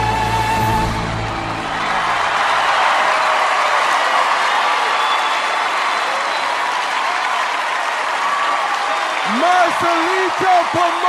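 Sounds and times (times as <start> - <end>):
audience applauding: 0.0 - 11.0.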